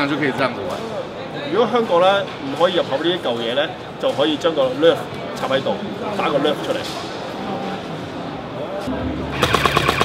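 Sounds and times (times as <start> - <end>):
automatic gunfire: 9.4 - 10.0.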